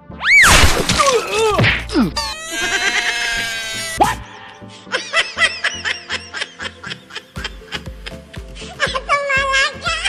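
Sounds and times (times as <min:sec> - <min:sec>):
high-pitched snickering laughter: 0:02.2 - 0:04.2.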